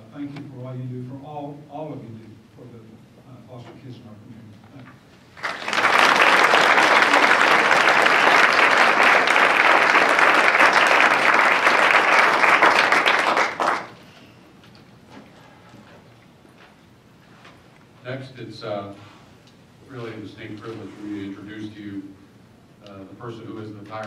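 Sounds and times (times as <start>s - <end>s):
audience applauding: 5.4s - 14.1s.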